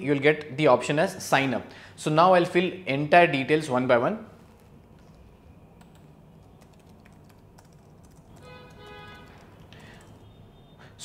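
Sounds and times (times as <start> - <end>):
computer keyboard typing: 4.5 - 10.2.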